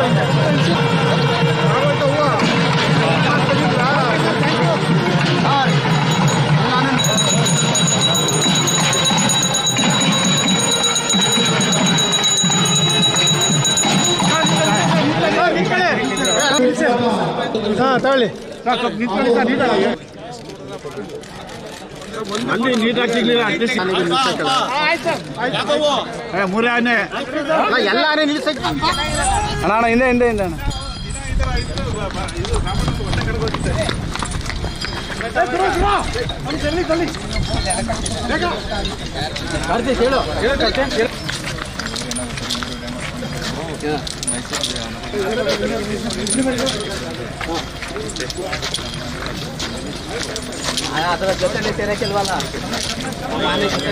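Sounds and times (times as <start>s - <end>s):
crowd chatter: 0.0s - 53.9s
people talking: 0.0s - 53.9s
hand bell ringing rapidly: 3.0s - 16.8s, 28.6s - 53.9s.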